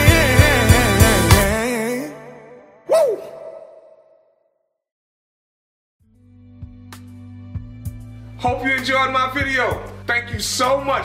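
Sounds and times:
r and b backing track: 0.0 - 2.1, 6.8 - 11.0
breathy vocal exclamation: 2.9 - 3.9.

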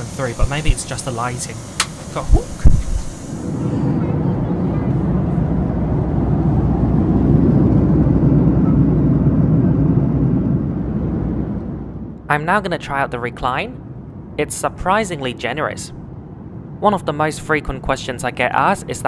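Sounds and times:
airplane cabin drone: 0.0 - 19.0
low thumps: 2.3 - 3.2.

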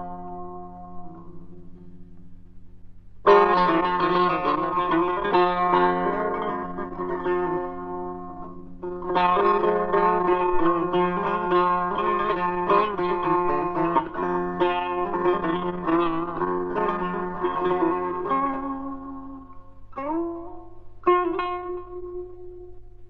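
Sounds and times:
plucked string instrument: 0.0 - 23.0.

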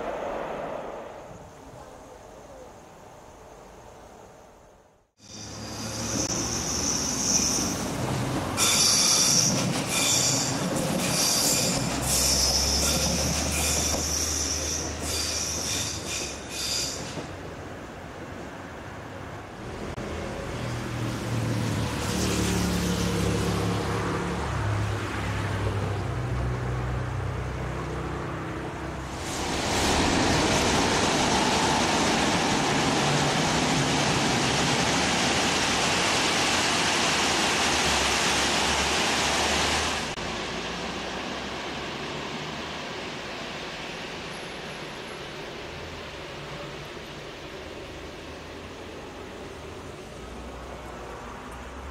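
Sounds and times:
train low hum: 0.0 - 51.9
train wheel squeal: 5.2 - 8.0, 8.6 - 17.4
train rolling noise: 5.2 - 24.6, 28.7 - 51.9.

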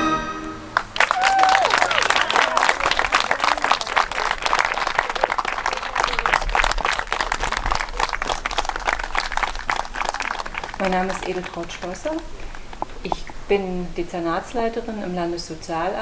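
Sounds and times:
audience applauding: 0.7 - 12.3.

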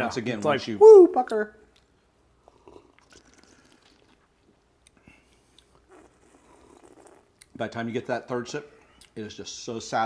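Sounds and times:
faint sips and mouth noises: 1.7 - 7.8.

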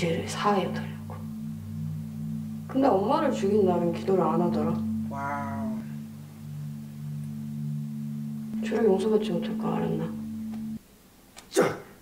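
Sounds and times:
low sustained music drone: 0.0 - 10.8.

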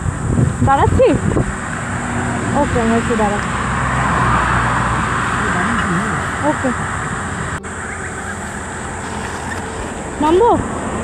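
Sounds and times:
highway traffic passing: 0.0 - 11.0
steady low hum: 4.6 - 11.0.

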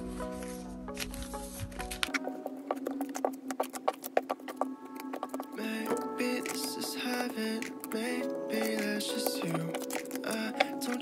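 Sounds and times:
background music: 0.0 - 11.0
photocards clicking on table: 1.0 - 11.0.

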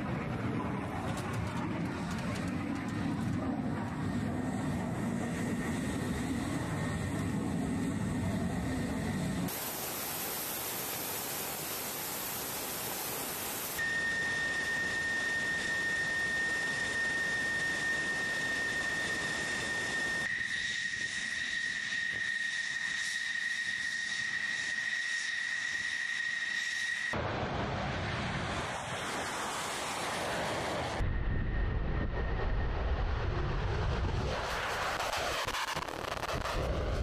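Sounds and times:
high-pitched turbine whine: 0.0 - 37.0
jet engine rushing: 0.0 - 37.0.

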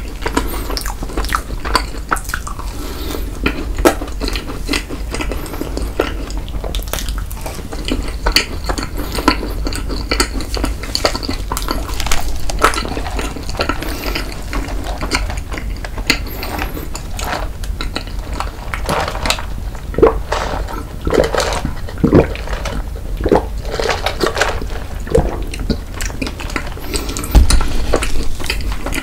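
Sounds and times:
wet chewing mouth clicks: 0.0 - 18.8.

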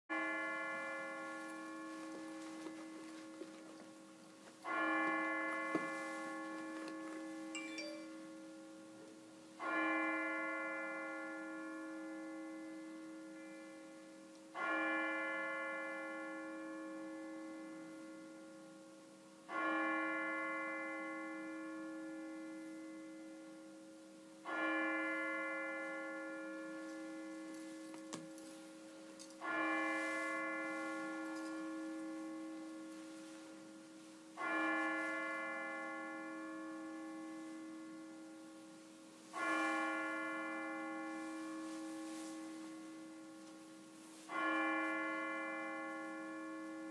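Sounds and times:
church bell tolling: 0.1 - 3.4, 4.6 - 9.0, 9.6 - 46.9.

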